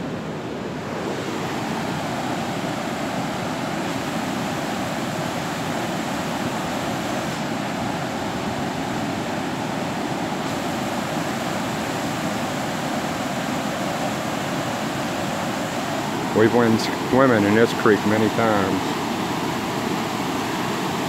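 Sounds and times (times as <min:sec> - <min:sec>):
floodwater rushing: 0:00.0 - 0:21.0.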